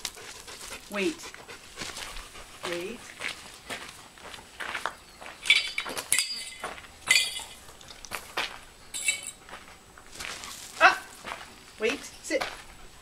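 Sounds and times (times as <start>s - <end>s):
small metal objects clinking: 5.4s - 8.2s, 8.9s - 9.4s.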